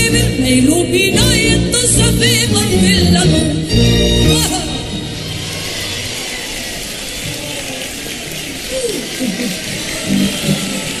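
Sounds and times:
audience applauding: 5.0s - 11.0s.

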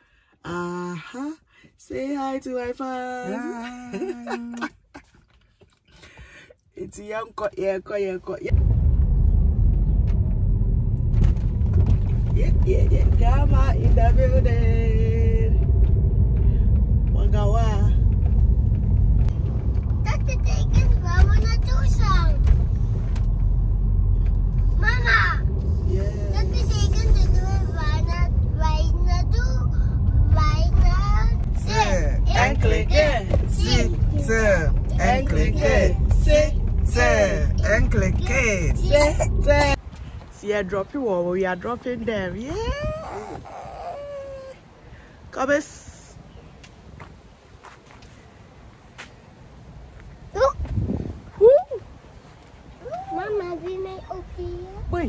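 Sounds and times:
car driving rumble: 0.1s - 55.0s
voices: 0.5s - 4.8s, 24.8s - 44.6s.

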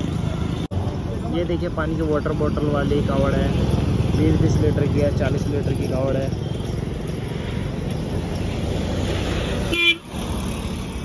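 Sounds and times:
highway traffic noise: 0.0s - 11.0s
vehicle horn toot: 9.7s - 10.1s.

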